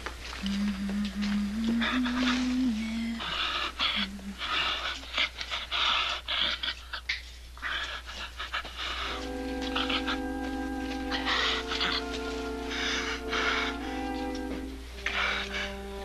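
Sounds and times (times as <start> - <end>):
orchestral chords: 9.0 - 16.0
low held music note: 9.1 - 16.0
man panting heavily: 11.0 - 16.0.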